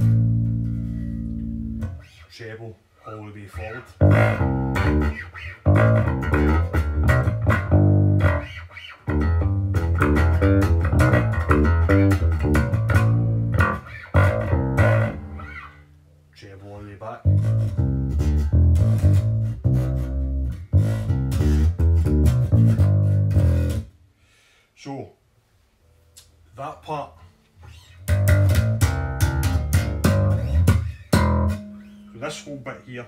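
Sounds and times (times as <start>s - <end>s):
electric bass plucked notes: 0.0s - 2.1s, 3.6s - 16.0s, 17.2s - 23.9s, 28.0s - 32.5s.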